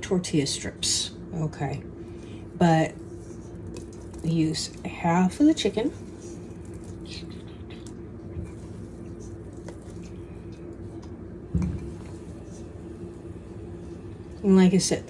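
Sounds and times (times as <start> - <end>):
steady low hum: 0.0 - 15.0
soft handling of food: 2.1 - 14.5
dull thump: 11.5 - 11.9.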